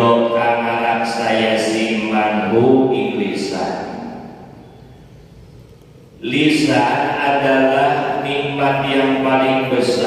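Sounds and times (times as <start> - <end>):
low room rumble: 0.0 - 10.0
word echoing in room: 0.0 - 10.0.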